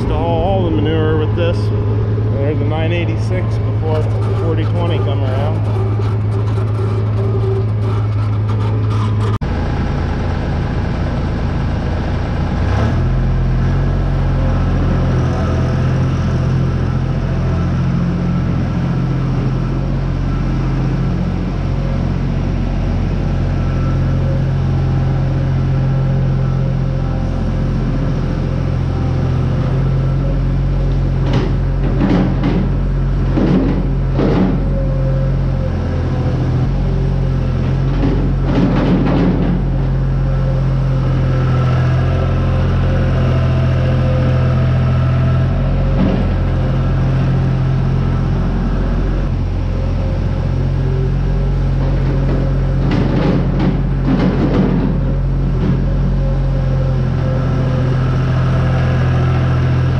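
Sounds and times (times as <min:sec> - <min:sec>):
skid steer engine: 0:00.0 - 0:59.9
tractor engine running: 0:00.0 - 0:59.9.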